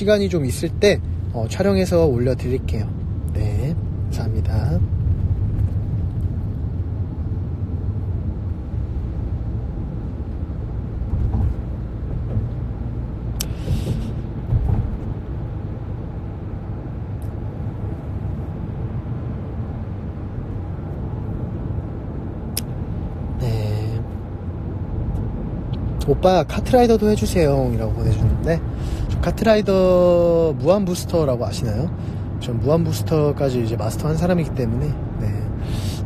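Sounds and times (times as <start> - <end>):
steady low rumble: 0.0 - 36.0.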